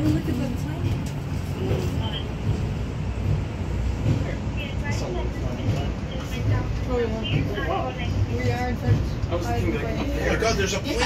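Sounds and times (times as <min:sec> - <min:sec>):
elevator car rumble: 0:00.0 - 0:11.0.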